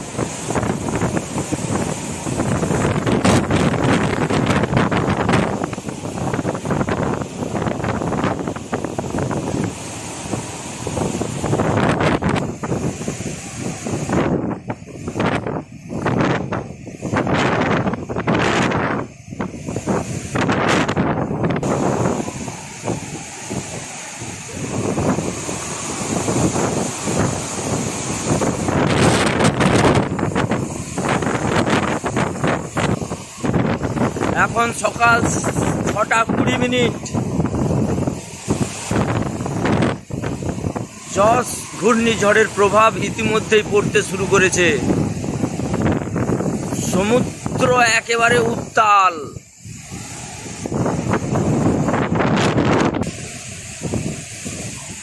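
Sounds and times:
wind gusting against microphone: 0:00.0 - 0:55.0.

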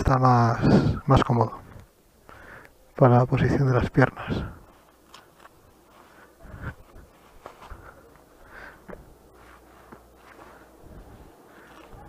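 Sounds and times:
low steady hum: 0:00.0 - 0:12.0
faint rustles: 0:00.6 - 0:12.0.

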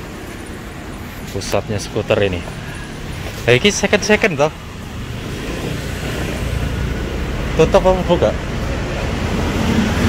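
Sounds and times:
car passing by: 0:04.9 - 0:10.0.

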